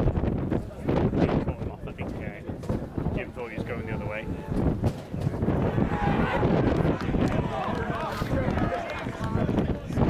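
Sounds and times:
people shouting and cheering: 3.5 - 10.0.

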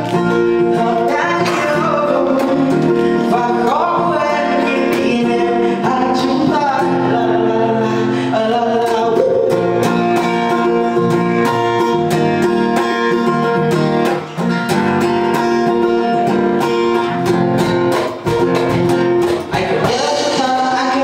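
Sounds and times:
cajon beat: 0.0 - 7.8, 8.4 - 21.0
acoustic guitar strummed: 0.0 - 21.0.

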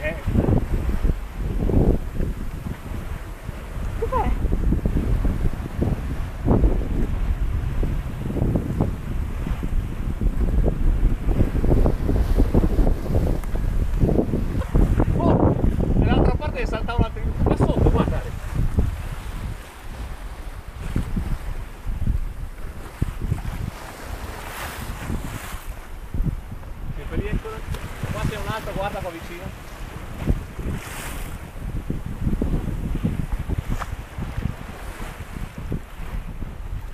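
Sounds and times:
waves washing along hull: 0.0 - 36.9
wind buffeting microphone: 0.0 - 36.9.

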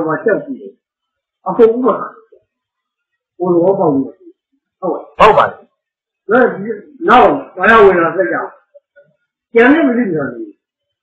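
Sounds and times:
man giving a talk: 5.2 - 5.5.

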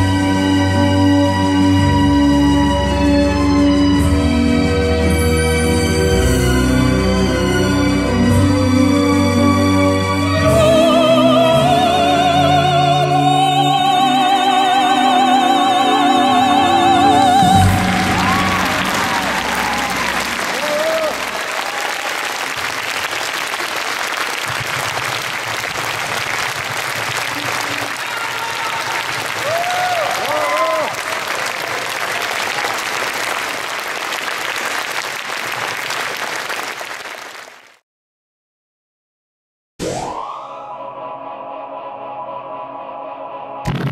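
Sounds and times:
audience applauding: 16.5 - 37.8.

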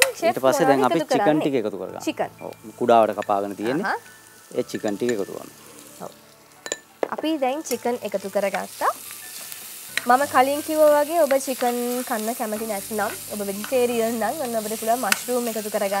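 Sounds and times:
chicken sizzling in a pan: 2.4 - 16.0.

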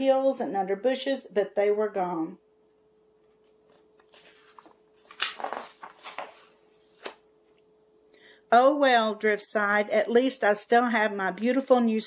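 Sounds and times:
faint steady hum: 0.0 - 12.0
paper pages rustling: 3.1 - 7.6.

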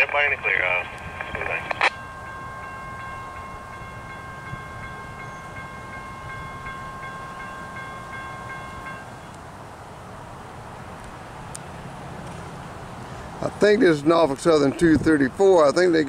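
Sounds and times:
low train rumble: 0.0 - 16.0.

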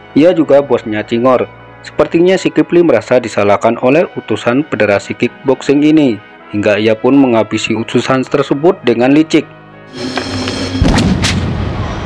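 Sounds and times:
heavy thud: 10.1 - 11.8
sharp punch cracks: 10.7 - 11.6.

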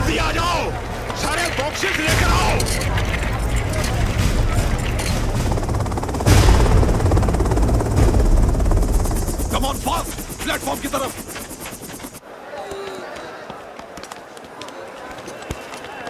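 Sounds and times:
people shouting: 0.0 - 4.8, 12.2 - 16.0
heavy low rumble: 0.0 - 12.2
rapid automatic gunfire: 0.0 - 12.2
loud blast: 1.7 - 11.5.

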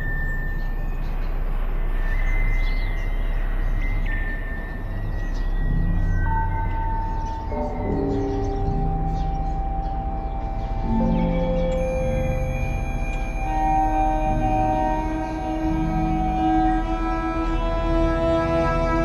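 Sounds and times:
eerie ambient music: 0.0 - 19.0
steady low rumble: 0.0 - 19.0.

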